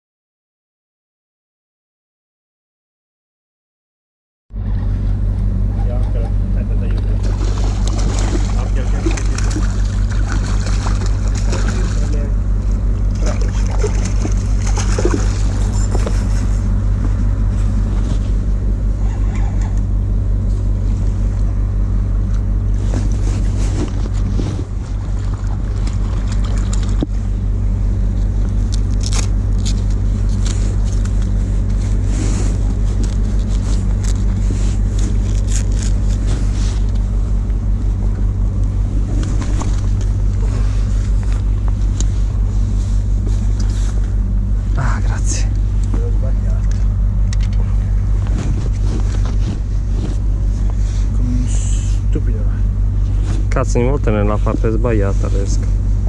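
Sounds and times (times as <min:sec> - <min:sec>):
ferry engines humming: 0:04.5 - 0:56.0
clothing rustling: 0:48.1 - 0:51.1.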